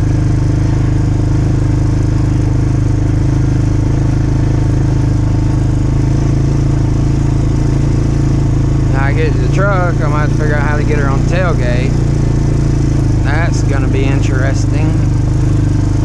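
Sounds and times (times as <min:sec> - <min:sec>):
small vehicle engine running steadily: 0:00.0 - 0:16.0.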